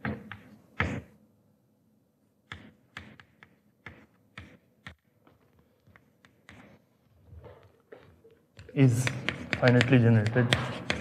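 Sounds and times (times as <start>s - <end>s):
chalk tapping and scratching: 0.0s - 1.2s, 2.5s - 11.0s.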